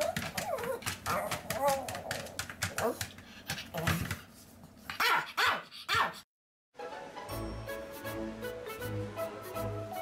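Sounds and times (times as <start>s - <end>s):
small dog barking: 5.0s - 6.2s.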